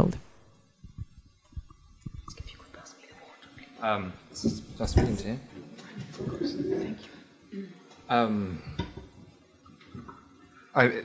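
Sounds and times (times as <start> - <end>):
faint low bumps and rustles: 0.8 - 2.5
soft whispering: 2.0 - 3.8.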